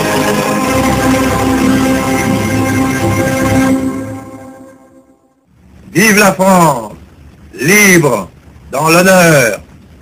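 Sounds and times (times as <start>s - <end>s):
orchestral sustained chords: 0.0s - 5.4s.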